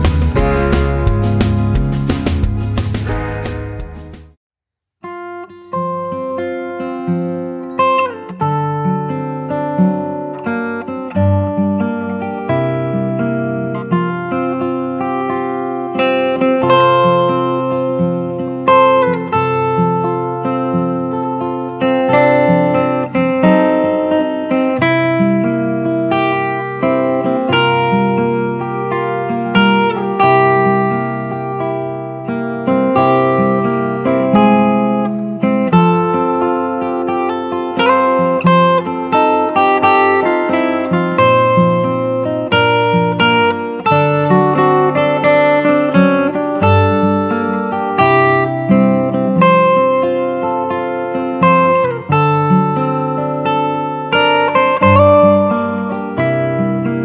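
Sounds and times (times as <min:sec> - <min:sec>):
acoustic guitar music: 0:00.0 - 0:04.4, 0:05.0 - 0:57.0.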